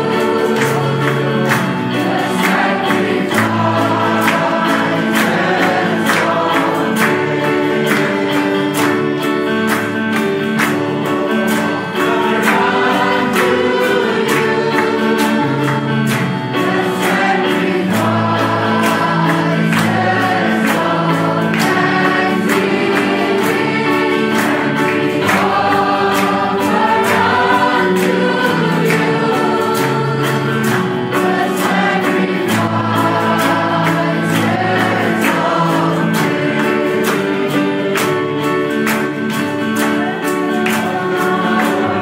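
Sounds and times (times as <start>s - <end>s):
choir singing worship song: 0.0s - 42.0s
instrumental accompaniment with beat: 0.0s - 42.0s.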